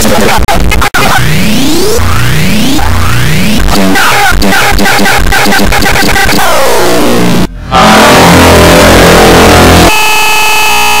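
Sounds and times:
harsh distorted noise: 0:00.0 - 0:11.0.

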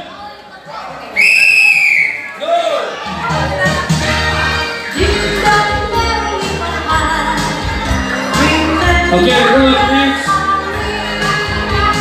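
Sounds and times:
people's voices: 0:00.0 - 0:12.0
whistle blast: 0:01.2 - 0:02.4.

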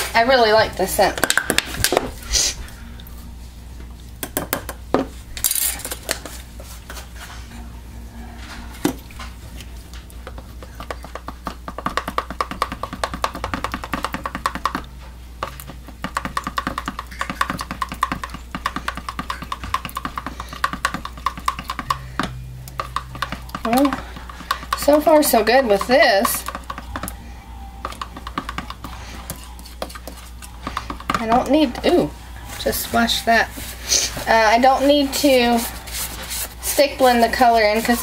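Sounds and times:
spoon scraping plastic cup: 0:27.9 - 0:31.7, 0:32.5 - 0:38.0.

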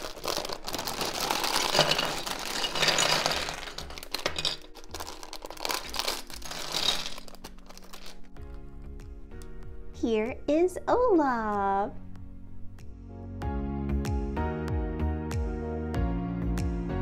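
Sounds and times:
plastic bag crinkling: 0:00.0 - 0:08.7
plastic pieces shifting: 0:00.0 - 0:08.7
light background music: 0:00.0 - 0:17.0.

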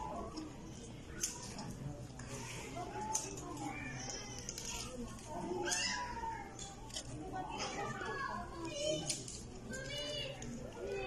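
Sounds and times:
hum of crowded indoor space: 0:00.0 - 0:11.0.

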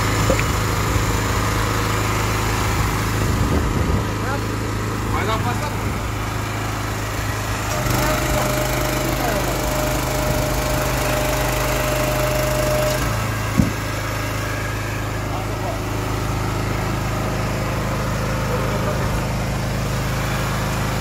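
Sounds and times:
hydraulic ram whine: 0:00.0 - 0:21.0
petrol engine running: 0:00.0 - 0:21.0.

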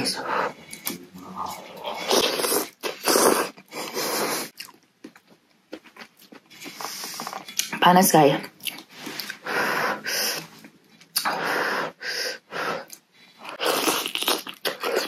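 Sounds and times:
person chewing: 0:00.6 - 0:07.8, 0:08.6 - 0:09.5, 0:10.2 - 0:11.4, 0:12.8 - 0:15.0.

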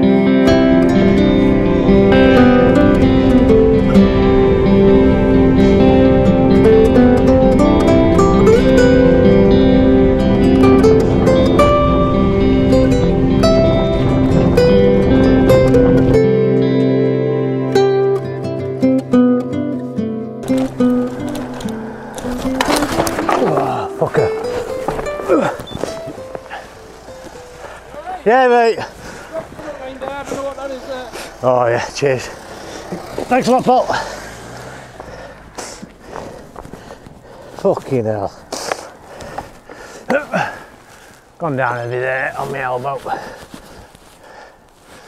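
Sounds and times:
plucked guitar music: 0:00.0 - 0:31.4
bicycle crash scraping on road: 0:20.4 - 0:45.0
man's voice: 0:23.3 - 0:24.5, 0:27.9 - 0:32.4, 0:41.4 - 0:43.4
man crying out: 0:25.2 - 0:25.6.

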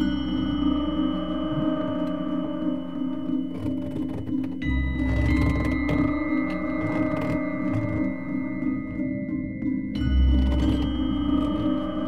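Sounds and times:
low drone: 0:00.0 - 0:12.0
ringing tones: 0:00.0 - 0:12.0.

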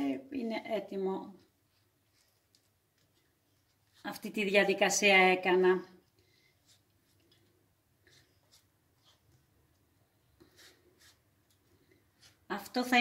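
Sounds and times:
pastry brush strokes on dough: 0:00.8 - 0:04.8, 0:10.2 - 0:13.0.

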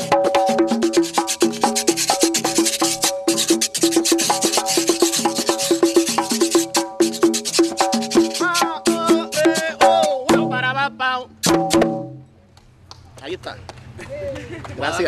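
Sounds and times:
guiro scraping: 0:00.4 - 0:10.2
frame drums hand strikes: 0:11.4 - 0:12.3.

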